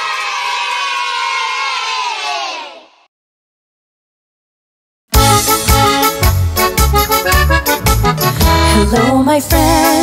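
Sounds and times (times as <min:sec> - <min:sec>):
children cheering: 0:00.0 - 0:02.9.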